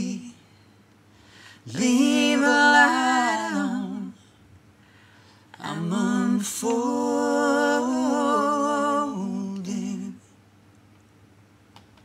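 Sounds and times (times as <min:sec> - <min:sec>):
voices singing a long note: 0:01.7 - 0:04.2, 0:05.6 - 0:10.2.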